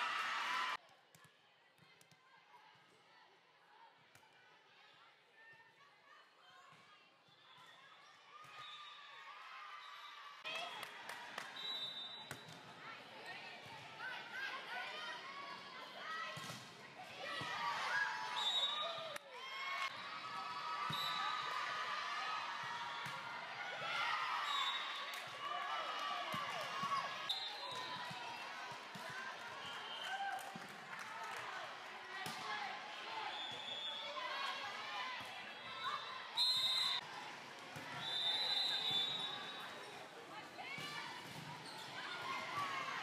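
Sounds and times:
voices in a gymnasium: 0.0 - 43.0
crowd chatter in a large hall: 10.7 - 17.7, 19.8 - 43.0
referee's whistle blasts: 18.3 - 19.0, 20.9 - 21.5, 36.0 - 37.0, 38.0 - 39.6.

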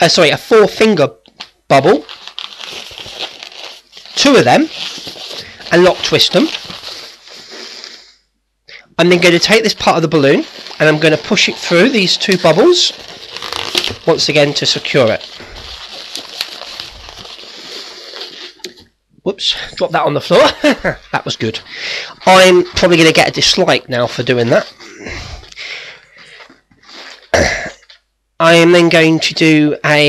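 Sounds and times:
balloon rubbing and squeaking: 2.3 - 8.0, 9.0 - 19.0.

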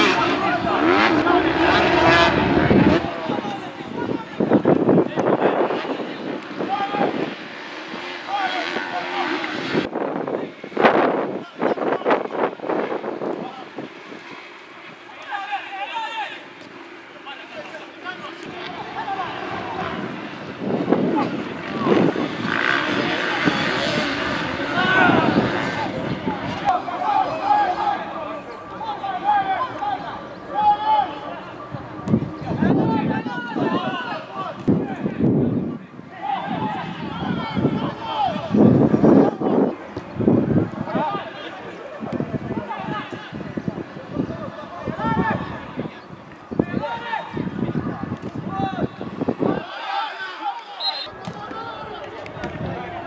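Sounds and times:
players calling out: 0.0 - 10.5, 11.3 - 53.0
broad rushing noise: 0.0 - 53.0.

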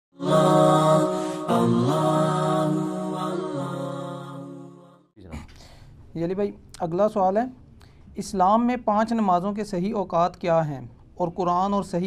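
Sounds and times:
chant-like vocal jingle: 0.2 - 5.1.

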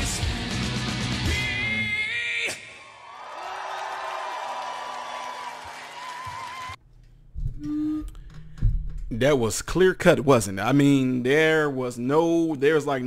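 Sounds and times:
crowd cheering and applauding: 2.7 - 6.8
short low hum: 6.9 - 9.1.

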